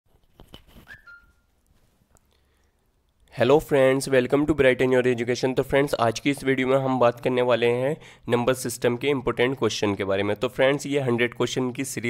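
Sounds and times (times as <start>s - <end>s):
high whistle-like tone: 0.8s - 1.5s.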